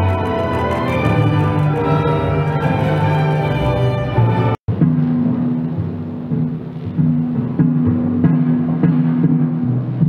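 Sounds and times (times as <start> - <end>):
orchestral music low held notes: 0.0 - 10.0.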